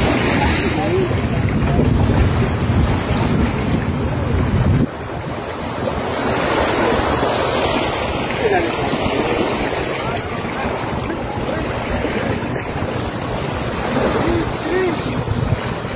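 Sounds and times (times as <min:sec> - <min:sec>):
sea water lapping: 0:00.0 - 0:15.9
wind buffeting microphone: 0:00.0 - 0:15.9.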